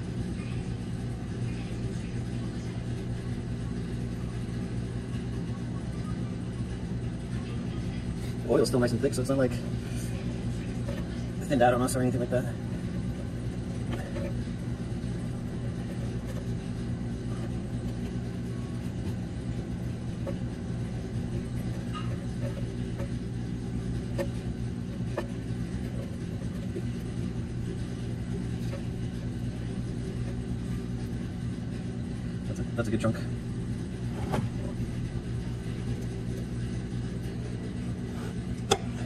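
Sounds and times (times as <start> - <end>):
low mechanical hum: 0.0 - 39.0.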